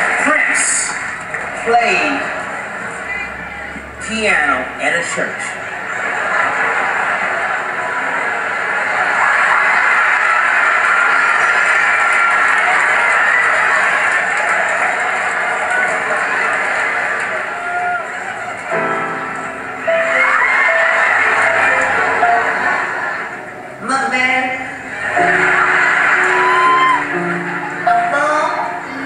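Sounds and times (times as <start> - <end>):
audience cheering and shouting: 0.0 - 4.0, 5.3 - 29.0
grand piano playing: 18.1 - 29.0.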